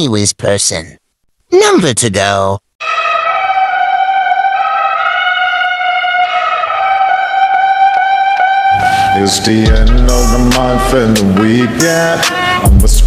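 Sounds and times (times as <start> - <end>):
held brass note: 2.8 - 12.9
hip-hop beat: 6.2 - 13.0.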